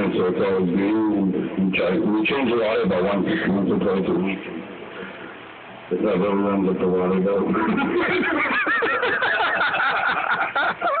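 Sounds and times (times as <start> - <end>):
laughter: 7.5 - 11.0.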